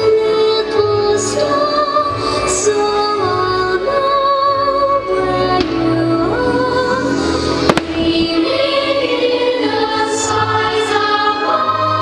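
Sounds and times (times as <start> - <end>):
show music with held notes: 0.0 - 12.0
firework bangs: 7.6 - 8.8.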